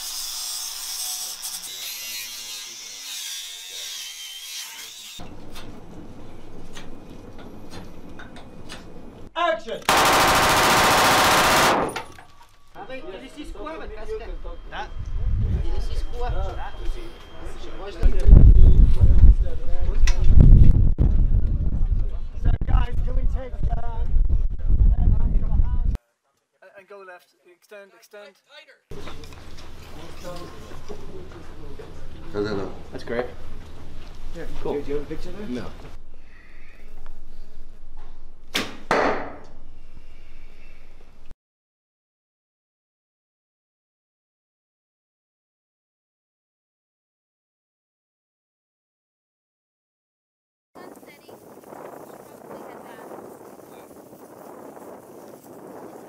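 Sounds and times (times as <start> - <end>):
automatic rifle burst: 9.9 - 12.2
arrow hitting target: 38.5 - 39.4.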